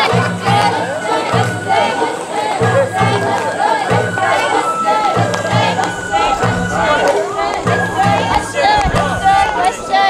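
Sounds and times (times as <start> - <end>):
crowd shouting calls: 0.0 - 10.0
festival music: 0.0 - 10.0.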